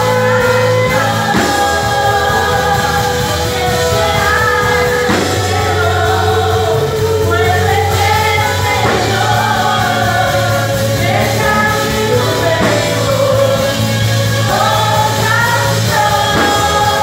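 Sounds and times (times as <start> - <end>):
worship band with singers: 0.0 - 17.0.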